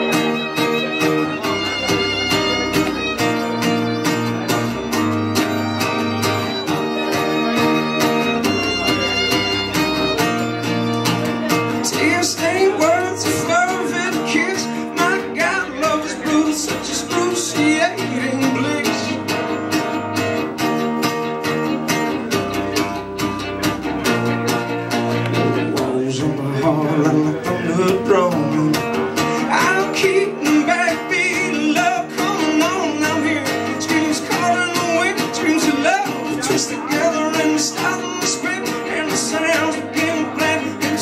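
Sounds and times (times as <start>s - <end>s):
fiddle with sliding notes: 0.0s - 41.0s
strummed acoustic guitar: 0.0s - 41.0s
upright double bass: 0.0s - 41.0s.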